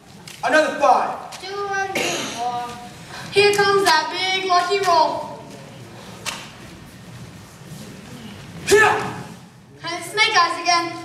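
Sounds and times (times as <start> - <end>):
faint hall ambience: 0.0 - 11.0.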